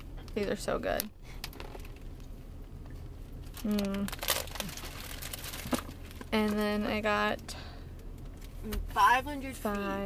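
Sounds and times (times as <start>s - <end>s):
plastic bag crinkling: 3.4s - 6.6s.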